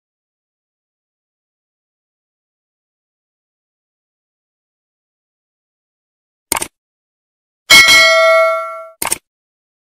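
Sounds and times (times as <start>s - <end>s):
bright metallic ding: 7.7s - 9.0s.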